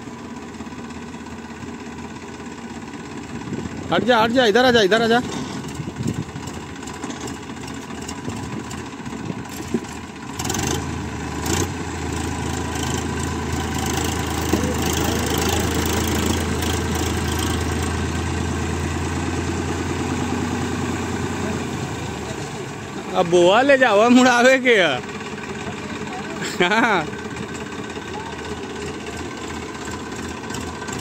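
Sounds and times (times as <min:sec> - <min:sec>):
tractor diesel engine revving: 0:01.6 - 0:31.0.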